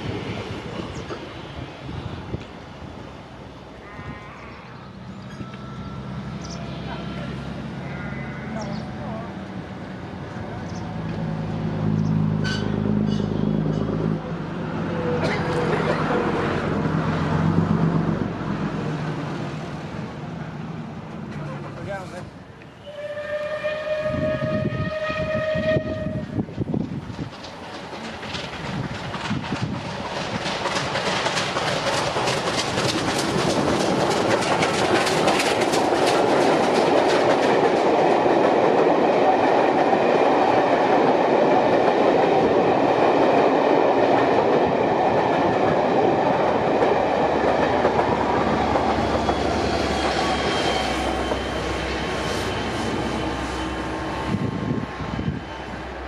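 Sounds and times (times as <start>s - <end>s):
train rumble: 0.0s - 3.8s, 4.9s - 56.0s
steam train whistle: 22.8s - 26.4s
wheels clattering over rail joints: 26.6s - 40.0s.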